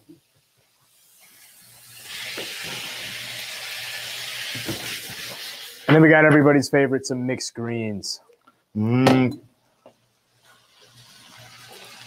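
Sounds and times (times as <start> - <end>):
food sizzling in a frying pan: 0.0 - 6.0, 10.3 - 12.0.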